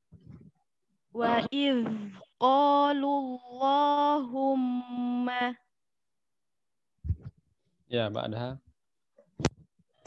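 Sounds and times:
short low thump: 7.0s - 7.3s
man speaking: 7.9s - 8.6s.

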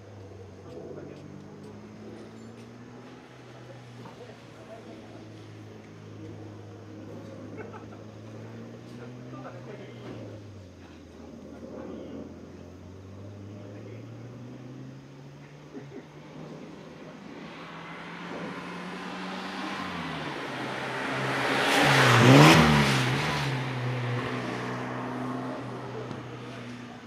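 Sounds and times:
car engine revving: 0.0s - 27.0s
car passing by: 0.6s - 27.0s.

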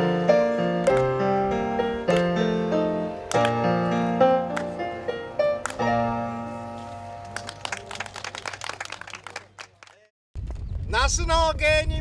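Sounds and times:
keyboard and guitar chord ringing: 0.0s - 7.8s
audience clapping: 0.8s - 1.2s, 3.3s - 3.6s, 4.5s - 4.8s, 5.6s - 5.9s, 7.2s - 10.1s.

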